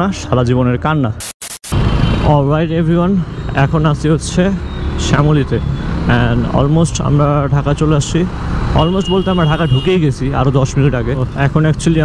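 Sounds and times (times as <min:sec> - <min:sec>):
man talking: 0:02.2 - 0:12.0.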